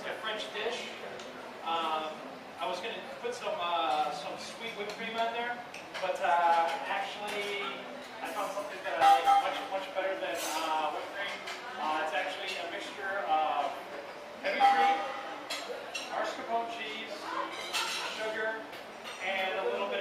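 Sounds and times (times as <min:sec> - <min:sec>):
voices talking in a room: 0:00.0 - 0:20.0
glassware clinking: 0:06.0 - 0:10.8, 0:17.5 - 0:18.3.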